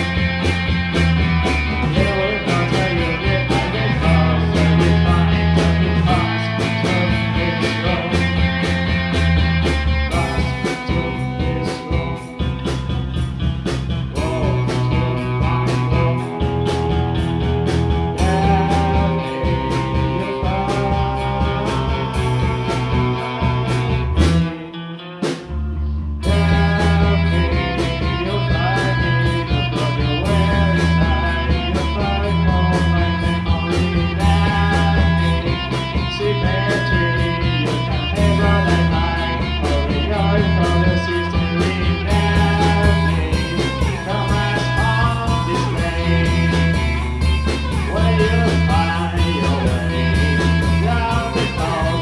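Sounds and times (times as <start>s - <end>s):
bass guitar: 0.0s - 52.0s
drums: 0.0s - 52.0s
electric guitars: 0.0s - 52.0s.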